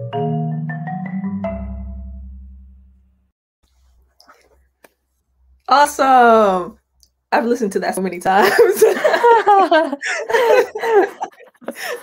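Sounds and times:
marimba notes: 0.0 - 2.4
low marimba bass note ringing: 0.0 - 2.8.

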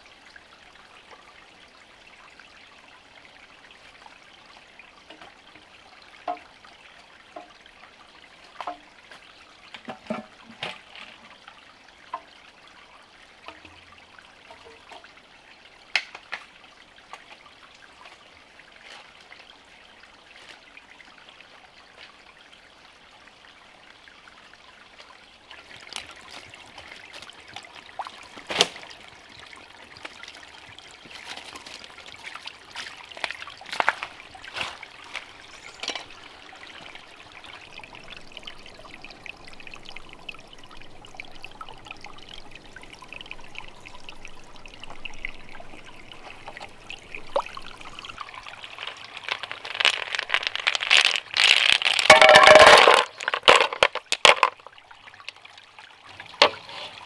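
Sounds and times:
stream trickling: 0.0 - 57.0
water pouring and splashing: 3.0 - 22.6, 23.2 - 57.0
knocks and scrapes: 48.6 - 54.6, 56.4 - 57.0.

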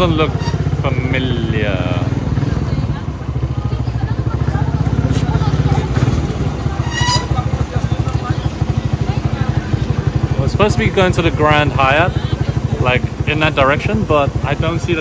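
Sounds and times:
small motorcycle engine running: 0.0 - 15.0.

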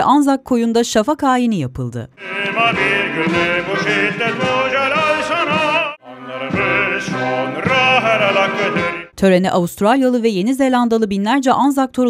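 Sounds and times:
voices singing an anthem: 2.2 - 9.2.

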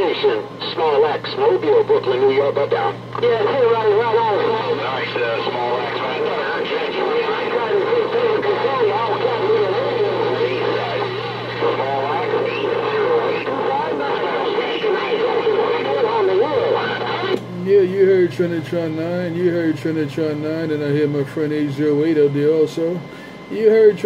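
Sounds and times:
garbled voices over radio speaker: 0.0 - 20.0
steady low hum: 0.0 - 24.0.

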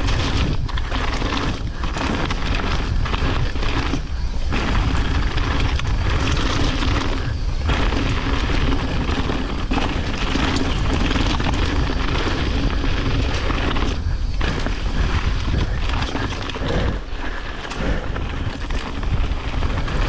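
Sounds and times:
bike tyres rolling over rocks: 0.0 - 20.0
wind rumble on microphone: 0.0 - 20.0.

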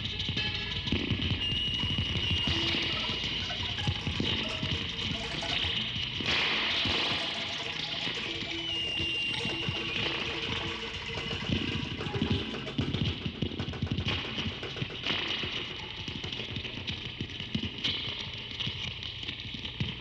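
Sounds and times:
hissing crackling noise texture: 0.0 - 20.0
high whistle-like tone: 1.3 - 5.9, 6.6 - 12.6.

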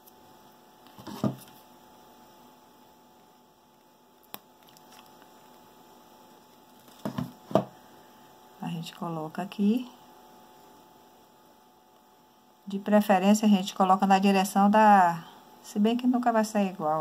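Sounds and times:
faint steady hum: 0.0 - 17.0
handling knocks and rustles: 6.7 - 7.7.

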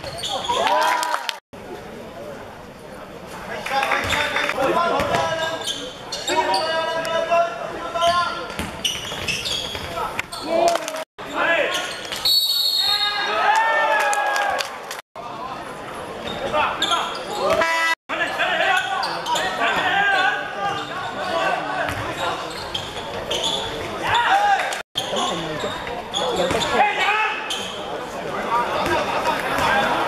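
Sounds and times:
basketball bouncing on hardwood court: 8.5 - 9.9.

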